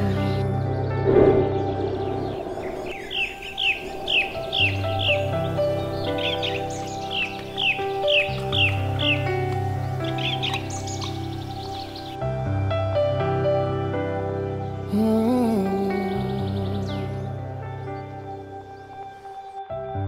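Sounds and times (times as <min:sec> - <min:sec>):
soft background music: 0:00.0 - 0:20.0
songbird chirping: 0:00.0 - 0:20.0.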